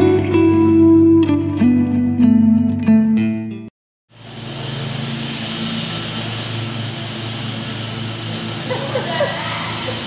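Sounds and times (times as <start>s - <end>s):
low mechanical hum: 4.2s - 10.0s.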